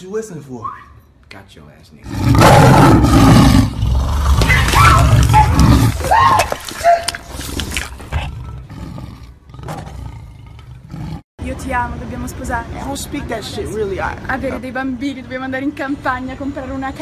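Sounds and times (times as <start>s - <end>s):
loud roar: 2.1s - 6.0s.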